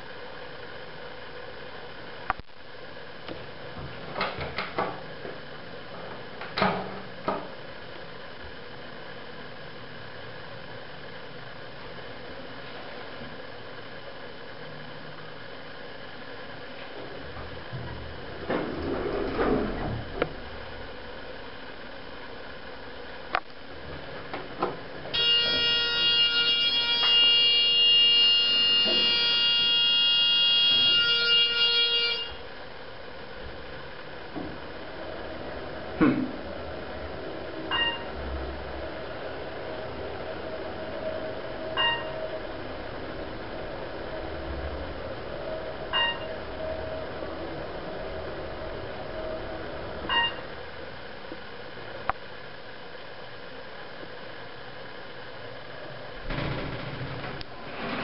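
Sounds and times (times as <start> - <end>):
elevator doors sliding: 16.9 - 21.1, 26.9 - 31.0, 33.4 - 51.1, 56.1 - 58.0
loud electronic buzzer: 25.1 - 32.5, 45.9 - 46.8
elevator clicks: 56.2 - 58.0.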